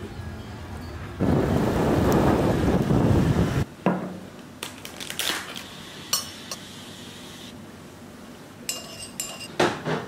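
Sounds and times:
wind buffeting microphone: 0:01.2 - 0:03.7.

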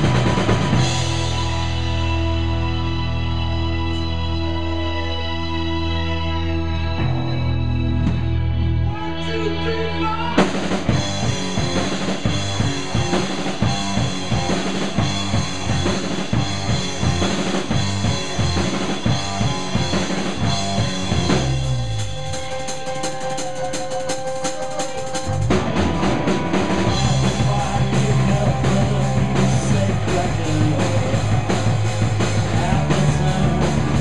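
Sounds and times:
drum kit fast beat: 0:00.0 - 0:02.5, 0:10.4 - 0:34.0
rock band playing: 0:00.0 - 0:34.0.

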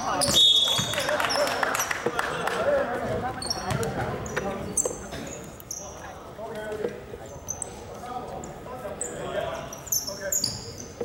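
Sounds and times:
sneakers squeaking on court: 0:00.0 - 0:01.4, 0:03.0 - 0:08.0, 0:09.0 - 0:11.0.

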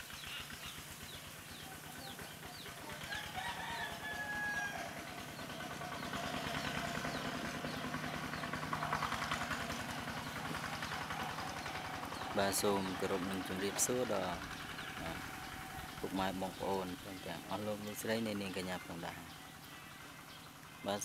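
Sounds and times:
small birds chirping: 0:00.0 - 0:21.0
rooster crowing: 0:02.9 - 0:06.3.

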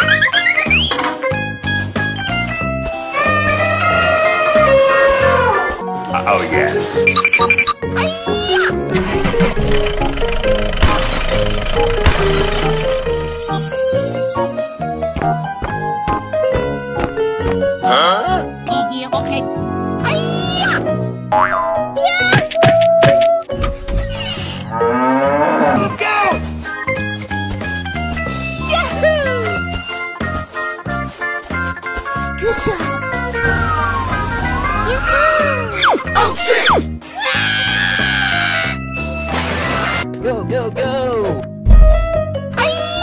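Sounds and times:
bouncy background music: 0:00.0 - 0:13.4, 0:14.2 - 0:24.9, 0:25.6 - 0:37.4.

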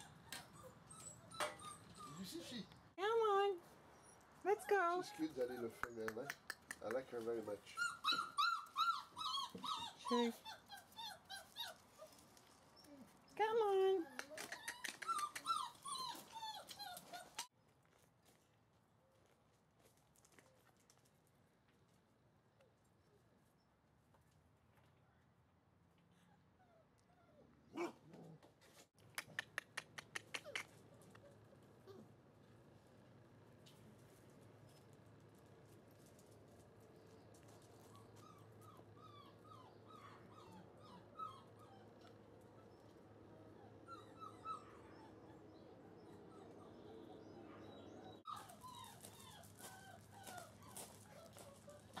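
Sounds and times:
puppy whimpering: 0:00.0 - 0:02.7, 0:04.0 - 0:06.4, 0:07.7 - 0:12.2, 0:14.0 - 0:17.5, 0:37.9 - 0:52.0.

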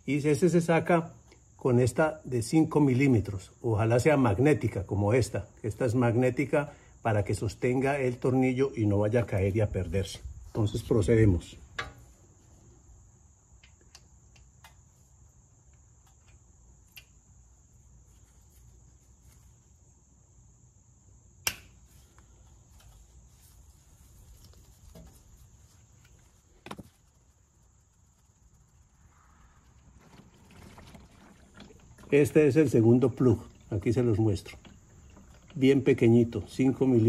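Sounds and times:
faint steady hiss: 0:00.0 - 0:37.0.

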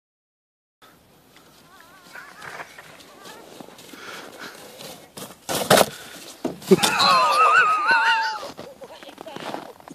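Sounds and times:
distant children calling out: 0:00.8 - 0:04.1
plastic sled sliding on snow: 0:01.5 - 0:09.9
sled scraping and thudding: 0:01.5 - 0:09.9.

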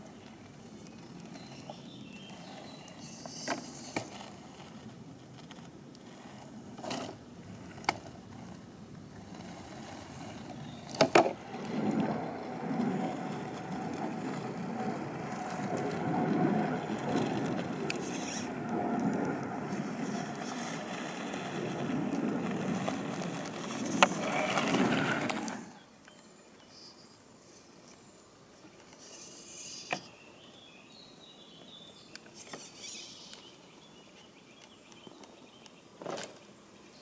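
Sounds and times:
tires grinding over rock: 0:00.6 - 0:25.8.

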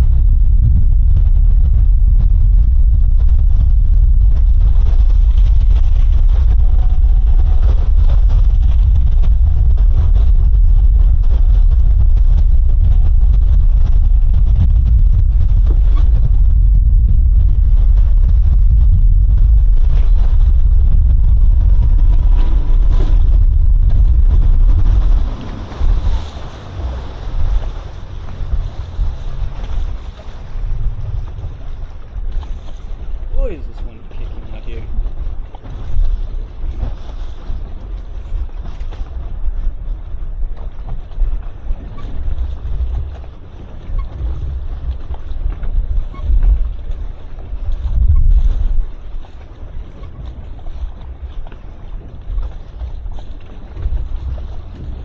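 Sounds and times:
outboard boat engine: 0:00.0 - 0:55.0
water around hull: 0:00.0 - 0:55.0
wind buffeting microphone: 0:00.0 - 0:55.0.

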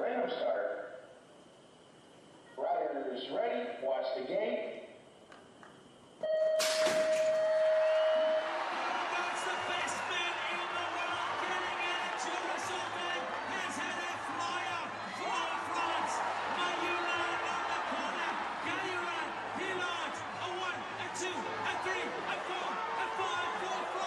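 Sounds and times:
crowd cheering: 0:07.2 - 0:24.0.

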